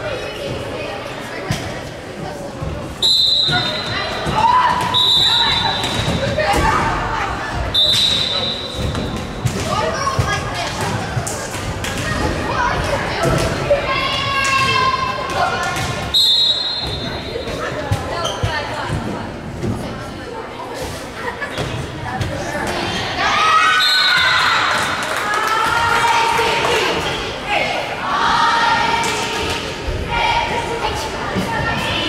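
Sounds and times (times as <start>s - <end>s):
referee whistle blasts: 3.0s - 4.0s, 4.8s - 6.2s, 7.7s - 8.9s, 16.1s - 17.2s.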